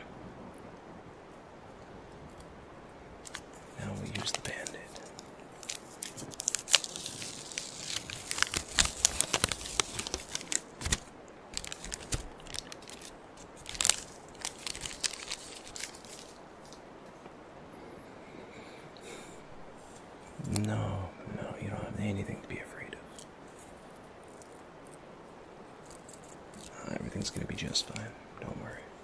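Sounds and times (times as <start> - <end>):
bandage wrapper crinkling and tearing: 3.2 - 16.8, 25.8 - 26.8.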